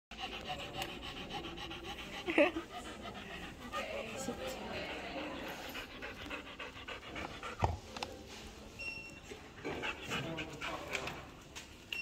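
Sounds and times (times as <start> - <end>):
quick panting: 0.1 - 7.6.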